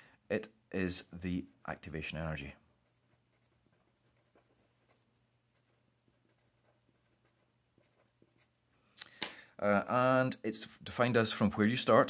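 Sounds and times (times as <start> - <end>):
felt-tip pen writing on paper: 2.8 - 8.7.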